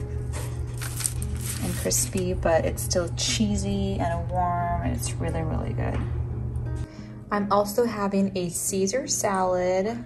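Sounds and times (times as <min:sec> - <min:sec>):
background music: 0:00.0 - 0:10.0
pizza crust crackling: 0:00.3 - 0:02.2
woman speaking: 0:01.6 - 0:06.1, 0:07.3 - 0:10.0.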